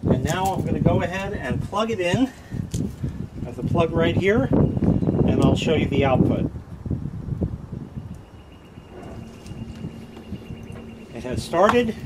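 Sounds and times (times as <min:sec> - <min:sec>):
low wind rumble: 0:00.0 - 0:12.0
pump motor hum: 0:08.6 - 0:12.0.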